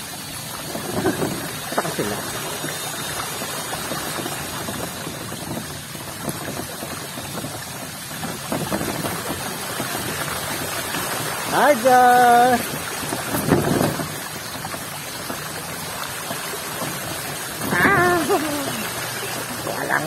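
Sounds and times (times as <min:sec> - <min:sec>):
tyres splashing through water: 0:00.0 - 0:20.0.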